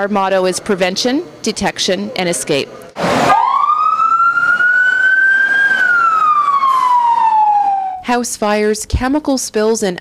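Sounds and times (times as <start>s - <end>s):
fire truck siren wailing: 3.1s - 8.0s.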